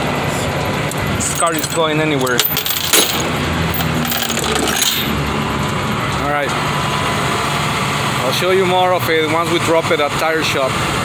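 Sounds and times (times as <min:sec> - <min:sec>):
freeway traffic: 0:00.0 - 0:11.0.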